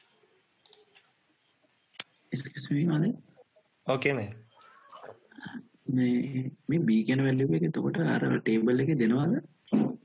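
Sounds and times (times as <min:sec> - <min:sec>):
faint clicks: 0:00.6 - 0:01.1.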